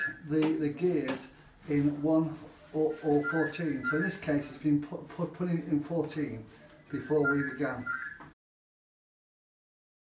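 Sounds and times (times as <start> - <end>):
man speaking: 0.0 - 8.1.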